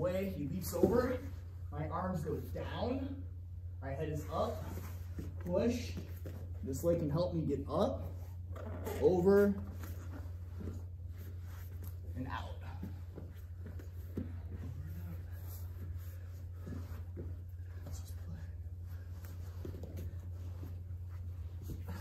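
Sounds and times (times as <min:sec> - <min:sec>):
steady low hum: 0:00.0 - 0:22.0
scuffs on foam mats: 0:09.6 - 0:22.0
people breathing: 0:12.6 - 0:22.0.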